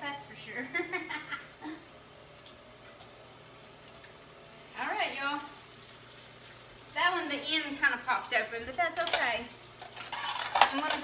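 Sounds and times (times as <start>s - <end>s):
food sizzling in a pan: 1.4s - 11.0s.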